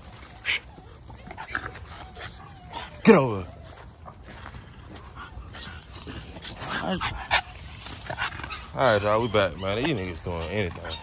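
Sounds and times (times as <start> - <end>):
puppies grunting and whining: 0.0 - 11.0.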